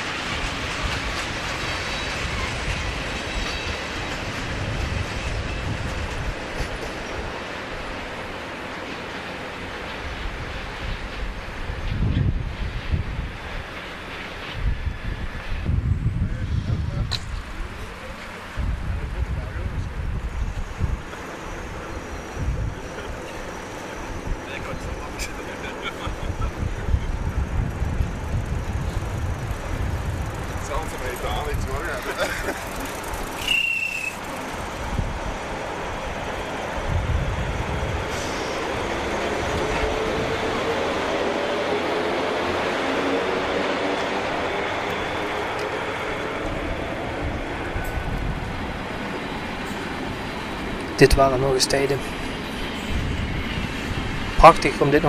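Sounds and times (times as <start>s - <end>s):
wind rumbling on microphone: 0.0s - 7.4s, 10.0s - 13.8s, 14.4s - 23.2s, 26.0s - 33.4s, 34.2s - 41.2s, 44.3s - 51.1s, 52.0s - 55.0s
electric locomotive hum rising: 0.0s - 55.0s
brief train squeal: 3.2s - 3.8s, 33.3s - 34.4s, 38.1s - 38.7s.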